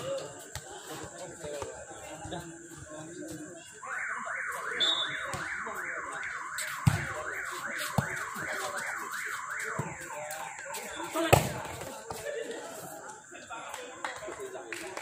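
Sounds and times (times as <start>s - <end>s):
electronic alarm wailing: 3.8s - 12.0s.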